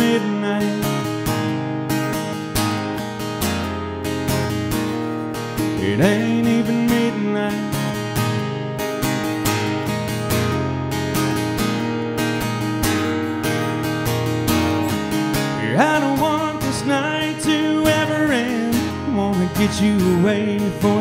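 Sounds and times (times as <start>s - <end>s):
man singing: 0.0s - 1.2s, 5.6s - 8.2s, 15.4s - 21.0s
acoustic guitar strumming: 0.0s - 21.0s.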